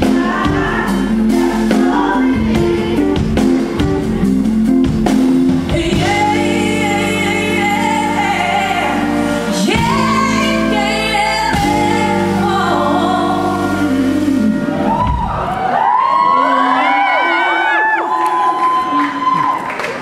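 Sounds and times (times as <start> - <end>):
woman singing: 0.0 - 4.1, 5.6 - 15.0
band with keyboard chords: 0.0 - 16.0
crowd whooping: 14.7 - 20.0.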